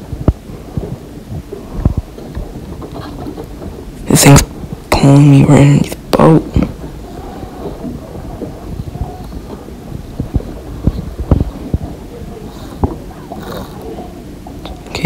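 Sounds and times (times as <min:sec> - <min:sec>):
low wind rumble: 0:00.0 - 0:15.0
person speaking: 0:04.0 - 0:15.0.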